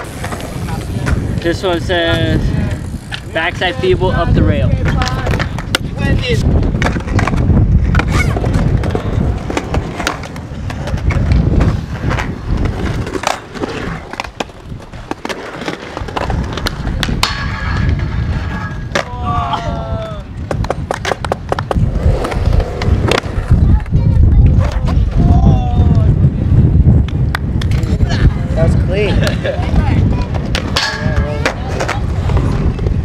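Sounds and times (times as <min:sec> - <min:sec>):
skateboard clacks: 0:00.0 - 0:03.4, 0:04.7 - 0:26.0, 0:29.1 - 0:33.0
skateboard wheels rolling on concrete: 0:00.0 - 0:33.0.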